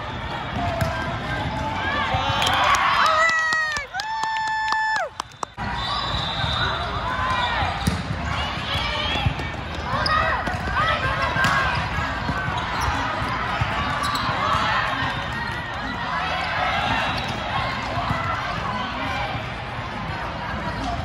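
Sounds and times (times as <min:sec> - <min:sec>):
many overlapping voices: 0:00.0 - 0:03.0, 0:05.6 - 0:21.0
sneakers squeaking on floor: 0:09.7 - 0:10.7, 0:12.4 - 0:14.6.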